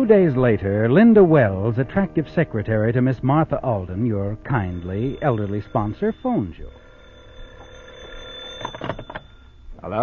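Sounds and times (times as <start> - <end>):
telephone bell ringing: 3.7 - 10.0.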